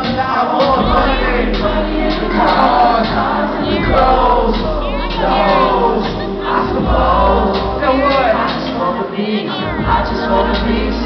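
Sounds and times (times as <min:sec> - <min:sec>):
crowd cheering and shouting: 0:00.0 - 0:11.0
loud live rap music: 0:00.0 - 0:11.0.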